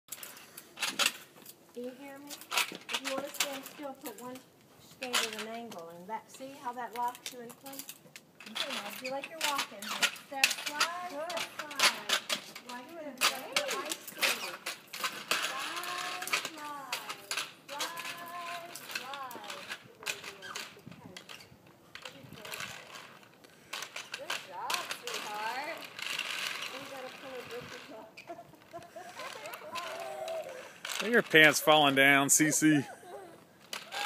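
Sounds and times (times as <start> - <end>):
skate wheels clicking on pavement: 0.1 - 32.8, 33.5 - 34.0
voices talking: 8.5 - 14.7, 15.4 - 22.9, 26.6 - 33.5.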